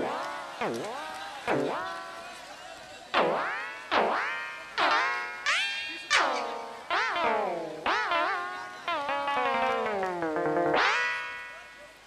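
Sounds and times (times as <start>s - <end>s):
comic electronic boing: 1.5s - 1.8s, 3.2s - 11.6s.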